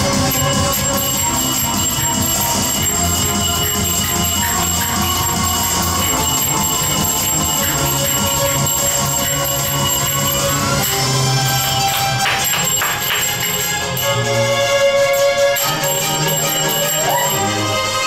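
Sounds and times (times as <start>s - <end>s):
loud dance music: 0.0s - 14.3s, 15.7s - 18.0s
finger cymbals clanging: 0.2s - 17.6s.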